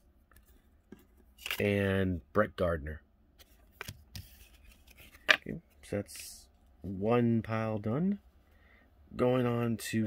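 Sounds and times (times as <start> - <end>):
cards being handled: 0.3 - 1.6, 3.4 - 5.6.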